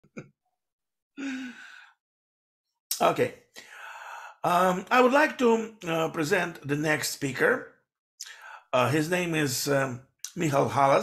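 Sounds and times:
man sighing: 0:01.2 - 0:01.9.

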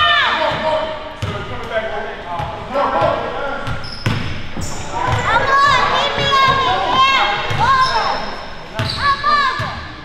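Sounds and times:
players' voices in echoing gym: 0:00.0 - 0:10.0
sneakers squeaking on court: 0:02.4 - 0:10.0.

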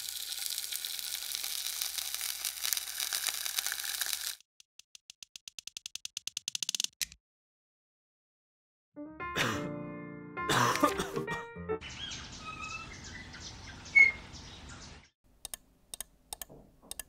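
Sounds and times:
dominoes toppling: 0:00.0 - 0:04.4
egg sizzling in a pan: 0:00.0 - 0:04.4.

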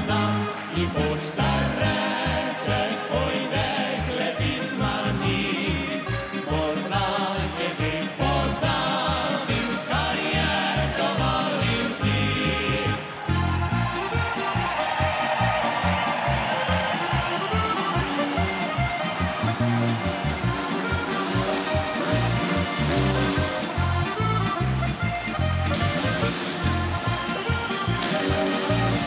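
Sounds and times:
button accordion: 0:00.0 - 0:29.0
oom-pah bass beat: 0:13.4 - 0:29.0.

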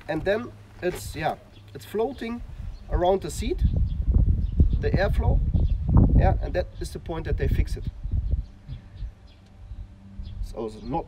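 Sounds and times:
wind buffeting microphone: 0:02.3 - 0:11.0.

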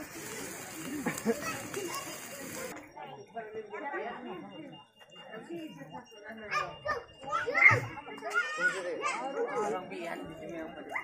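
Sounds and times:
children calling and chattering: 0:00.0 - 0:11.0
people talking: 0:00.0 - 0:11.0.

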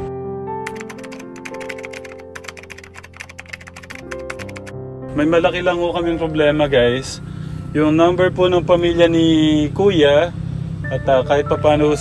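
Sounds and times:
background music with sustained notes: 0:00.0 - 0:09.6, 0:10.6 - 0:12.0
keyboard typing clicks: 0:00.6 - 0:04.7.

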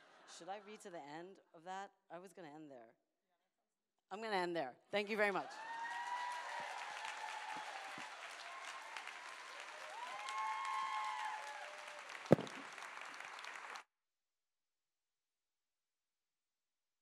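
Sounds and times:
people cheering: 0:05.4 - 0:13.8
audience applauding: 0:05.5 - 0:13.8
sharp thump: 0:12.3 - 0:12.6.

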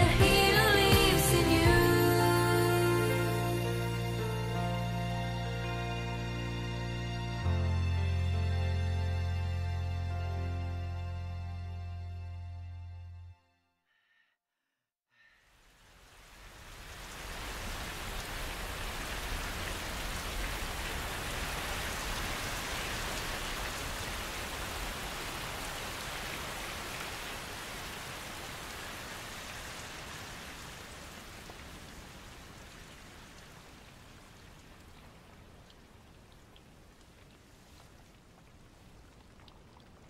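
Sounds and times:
rain falling: 0:00.0 - 0:08.8, 0:15.5 - 0:40.0.

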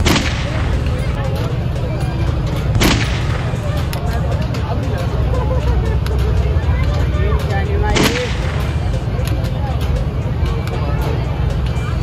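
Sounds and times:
air rifle shot: 0:00.0 - 0:00.8, 0:02.8 - 0:03.4, 0:07.9 - 0:08.6
steady low rumble: 0:00.0 - 0:12.0
voices: 0:00.0 - 0:12.0.

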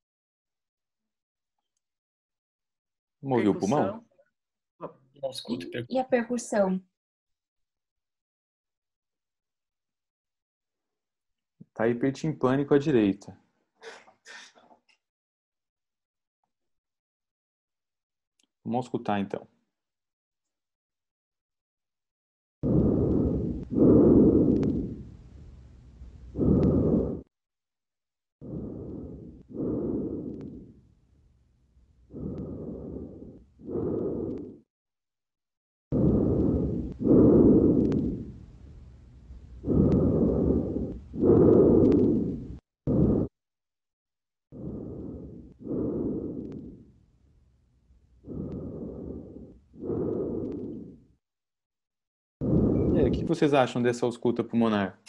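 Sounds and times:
breathing through stethoscope: 0:22.6 - 0:25.2, 0:26.3 - 0:27.3, 0:28.4 - 0:30.9, 0:32.1 - 0:34.7, 0:35.9 - 0:38.8, 0:39.6 - 0:43.4, 0:44.5 - 0:47.0, 0:48.2 - 0:51.1, 0:52.4 - 0:53.3.

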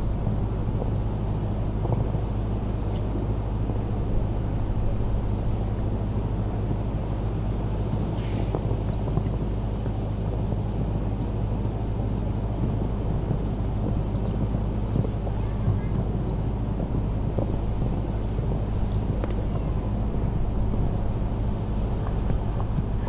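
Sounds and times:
low background rumble: 0:00.0 - 0:23.0
low hum: 0:00.0 - 0:23.0.

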